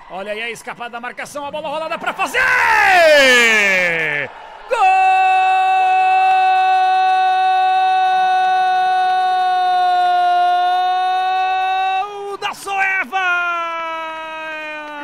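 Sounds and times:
commentator's long goal cry: 2.1 - 12.1.

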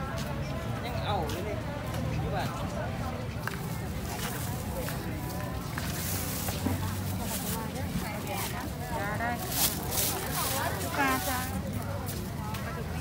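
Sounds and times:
people talking: 0.0 - 13.0
plastic bags rustling: 3.8 - 11.8.

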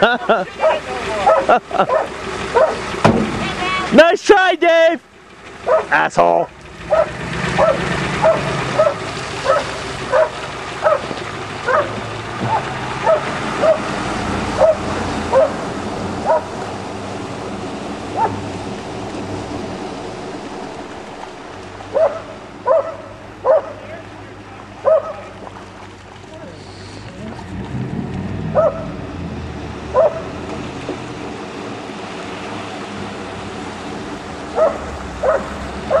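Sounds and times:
dog barking: 0.6 - 2.8, 5.6 - 5.9, 6.9 - 13.9, 14.6 - 15.6, 16.2 - 16.6, 18.2 - 18.4, 21.9 - 23.8, 24.8 - 25.3, 28.6 - 28.9, 29.9 - 30.3, 34.6 - 36.0
steady rushing noise: 11.7 - 24.4.

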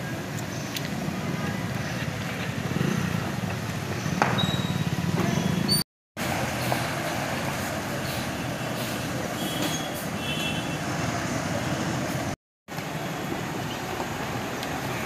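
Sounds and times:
bus engine running: 6.2 - 10.0.

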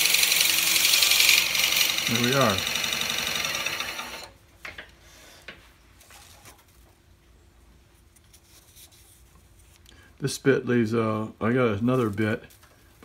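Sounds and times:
lathe drilling: 0.0 - 4.3.

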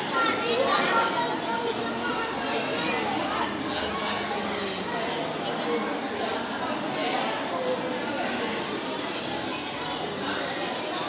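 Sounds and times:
children calling and chattering: 0.0 - 11.0
people talking: 0.0 - 11.0.

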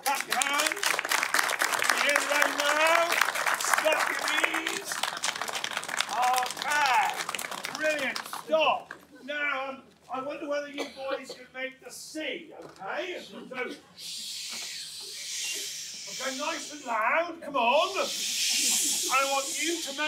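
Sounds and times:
crowd snapping fingers: 0.0 - 9.1
voices: 6.1 - 20.0.

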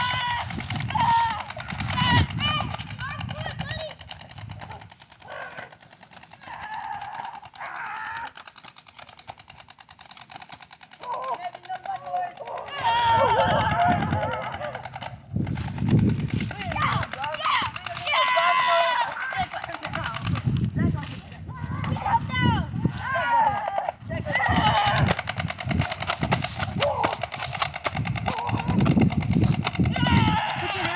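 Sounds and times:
young voices yelling: 0.0 - 4.0, 5.3 - 8.6, 11.0 - 15.0, 16.5 - 20.2, 21.5 - 25.2, 29.8 - 30.9.

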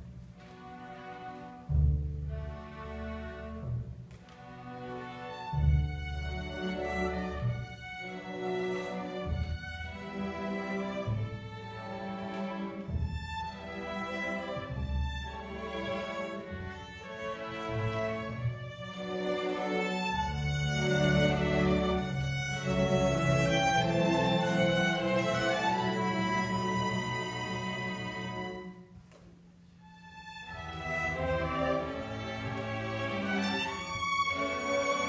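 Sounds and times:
string orchestra bowed notes: 0.0 - 35.0.

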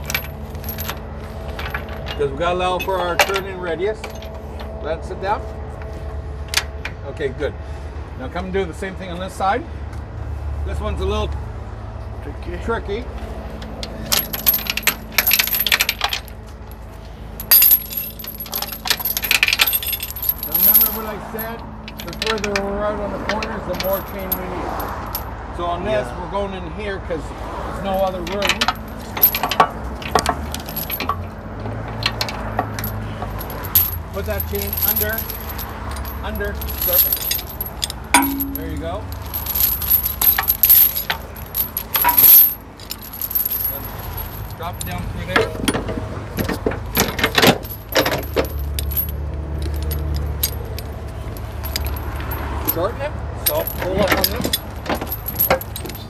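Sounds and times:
chain links clinking and rattling: 0.0 - 7.0, 13.3 - 25.4, 27.8 - 56.0.

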